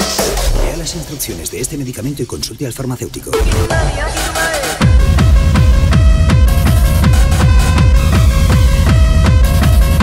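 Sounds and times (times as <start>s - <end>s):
fast electronic dance music: 0.0s - 10.0s
synth stabs: 3.3s - 10.0s
kick drum: 3.4s - 10.0s.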